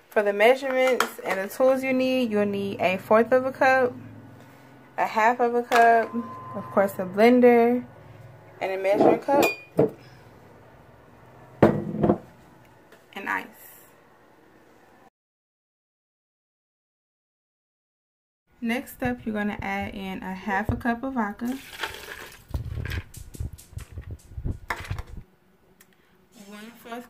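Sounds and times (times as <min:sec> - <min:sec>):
container knocking on countertop: 0:11.6 - 0:12.3
liquid pouring over ice: 0:21.5 - 0:22.5.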